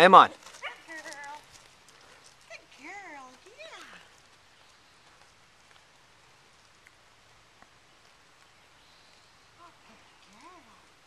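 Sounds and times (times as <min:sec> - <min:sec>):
soft ticks: 0:06.6 - 0:09.3.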